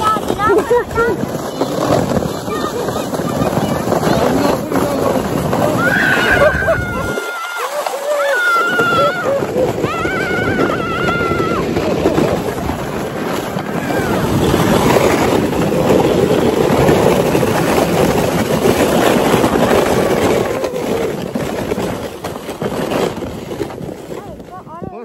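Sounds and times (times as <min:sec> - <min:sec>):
sled scraping over snow: 0:00.0 - 0:25.0
high-pitched voice squealing: 0:05.6 - 0:11.8.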